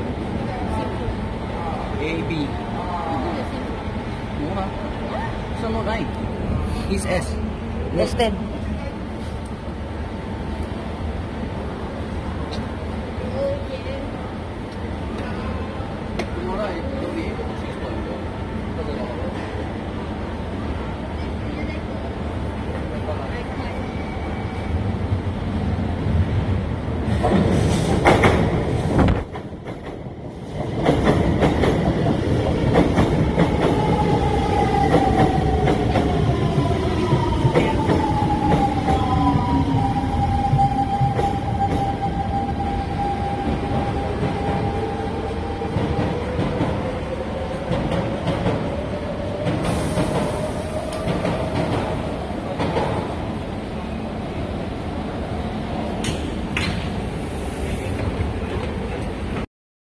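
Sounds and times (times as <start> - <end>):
train wheels rumbling and clattering: 16.1 - 59.5.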